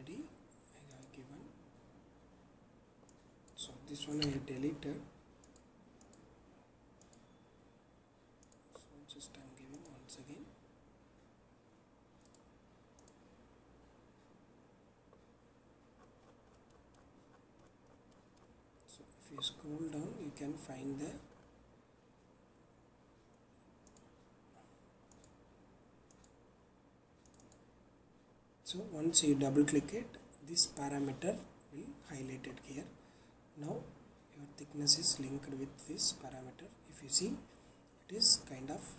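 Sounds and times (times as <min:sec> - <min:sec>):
computer mouse clicks: 0:03.1 - 0:04.5, 0:05.4 - 0:06.3, 0:07.0 - 0:07.3, 0:08.4 - 0:08.9, 0:09.7 - 0:10.0, 0:12.2 - 0:13.2, 0:23.3 - 0:24.1, 0:25.1 - 0:25.4, 0:26.1 - 0:26.4, 0:27.2 - 0:27.7
mouse buttons clicking: 0:04.0 - 0:04.5.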